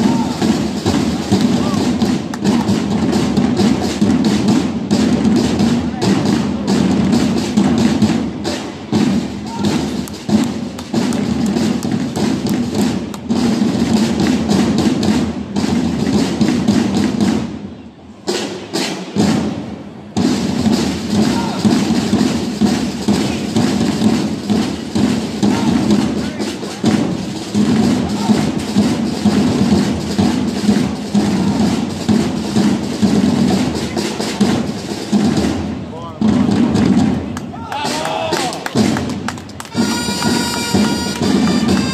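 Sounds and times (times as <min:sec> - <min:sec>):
parade drums beating: 0:00.0 - 0:41.9
voices: 0:09.4 - 0:10.3, 0:21.2 - 0:22.0, 0:25.4 - 0:27.0, 0:28.0 - 0:28.7, 0:31.1 - 0:32.1.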